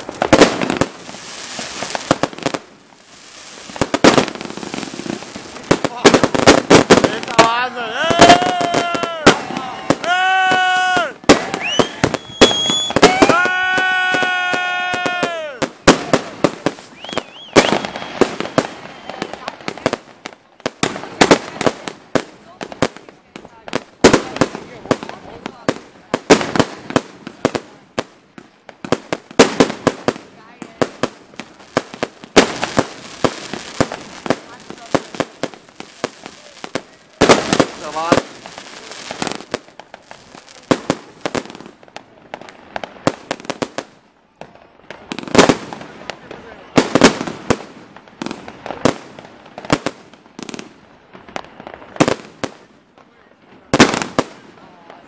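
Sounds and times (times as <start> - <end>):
fireworks whistling: 0.0 - 21.9, 31.3 - 52.7
fireworks bangs and crackling: 0.0 - 55.0.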